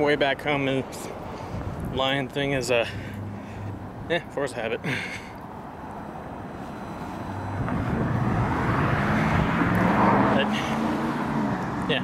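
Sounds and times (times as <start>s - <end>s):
vehicle passing close by: 5.6s - 12.0s.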